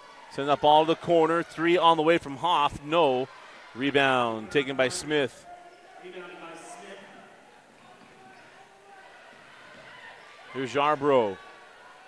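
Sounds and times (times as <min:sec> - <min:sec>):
distant crowd voices: 0:00.0 - 0:12.0.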